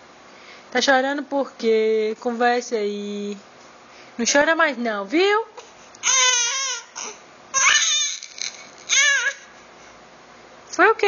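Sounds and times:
baby crying: 0:06.0 - 0:09.5.

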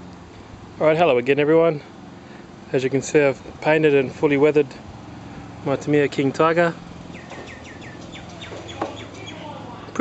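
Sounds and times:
small bird chirping: 0:07.1 - 0:09.6.

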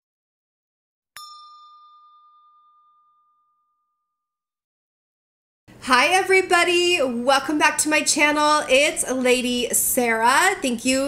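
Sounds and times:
bell ding: 0:01.2 - 0:04.6.

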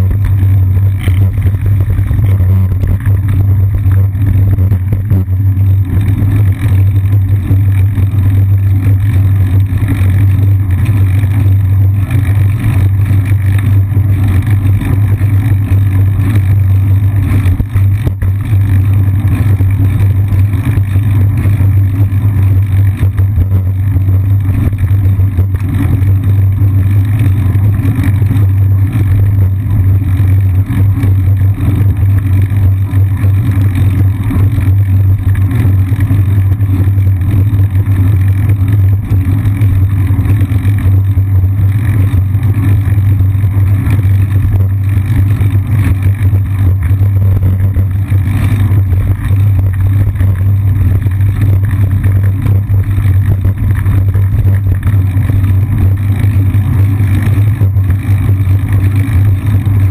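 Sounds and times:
road vibration rumble: 0:00.0 - 0:59.9.

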